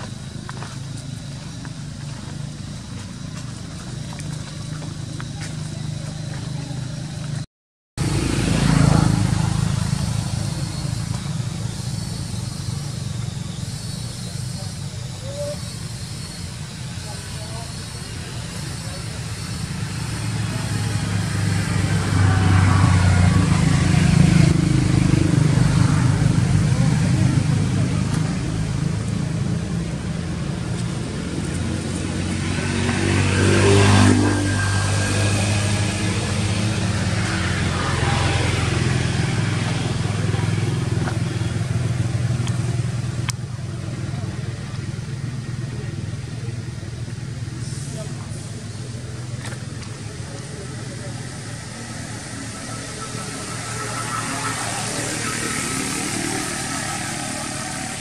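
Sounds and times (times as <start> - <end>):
vehicle engines passing by: 0.0 - 58.0.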